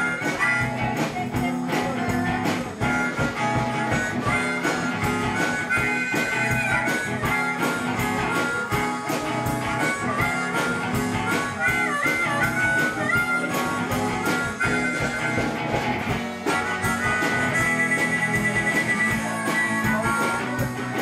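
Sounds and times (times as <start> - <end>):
harmonica solo: 0.0 - 21.0
live band music: 0.0 - 21.0
strummed guitar: 0.0 - 21.0.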